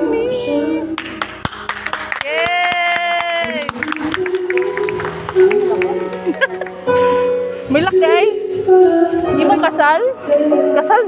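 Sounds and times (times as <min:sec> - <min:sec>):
music: 0:00.0 - 0:11.0
hand clapping: 0:01.0 - 0:06.8.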